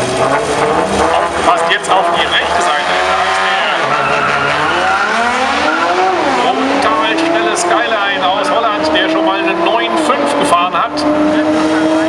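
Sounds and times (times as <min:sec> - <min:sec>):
car engines accelerating hard: 0:00.0 - 0:12.0.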